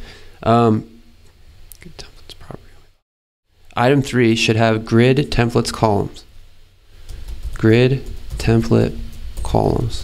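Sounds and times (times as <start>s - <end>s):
man whispering: 1.8s - 3.0s.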